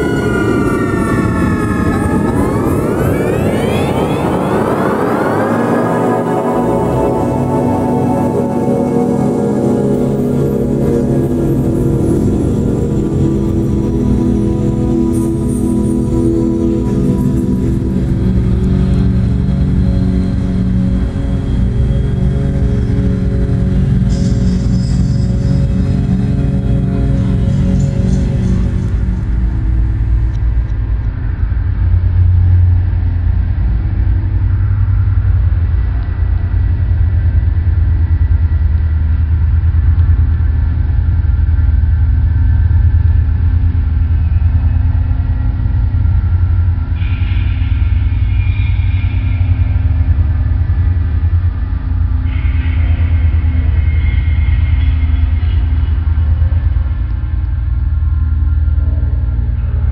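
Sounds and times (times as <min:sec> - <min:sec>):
harsh bright noise layers: 0:00.0 - 0:59.9
low rumbling drone: 0:00.0 - 0:59.9.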